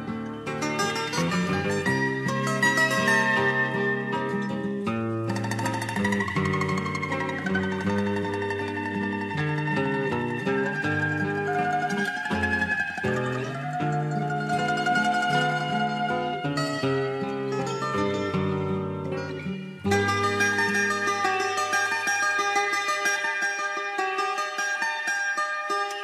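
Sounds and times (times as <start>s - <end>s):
cavaquinho melody: 0.0s - 26.0s
lower accompanying notes: 1.0s - 23.6s.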